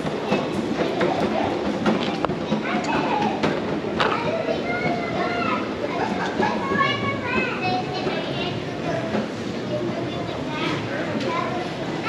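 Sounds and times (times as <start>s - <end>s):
children's voices chattering: 0.0s - 12.0s
shopping mall hubbub: 0.0s - 12.0s.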